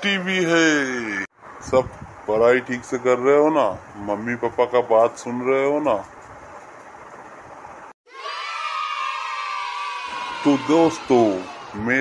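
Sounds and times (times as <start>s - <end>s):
children shouting and cheering: 8.1s - 12.0s.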